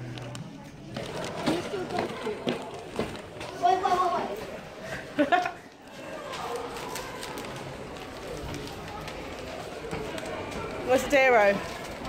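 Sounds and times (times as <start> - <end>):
faint indistinct voices: 0.0 - 12.0.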